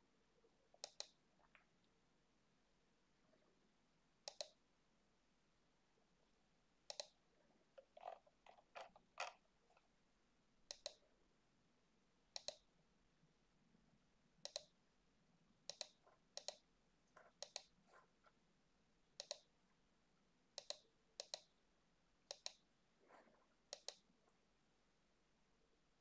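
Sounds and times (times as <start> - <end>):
computer mouse button clicking: 0.8 - 1.2, 4.3 - 4.6, 6.9 - 7.2, 10.7 - 11.0, 12.4 - 12.6, 14.4 - 14.7, 15.7 - 16.6, 17.4 - 17.7, 19.2 - 19.5, 20.6 - 21.5, 22.3 - 22.6, 23.7 - 24.0.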